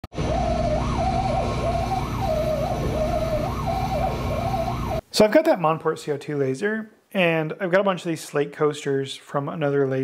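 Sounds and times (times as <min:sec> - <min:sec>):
stepper motors whining: 0:00.1 - 0:05.0
steady low hum: 0:00.2 - 0:05.0.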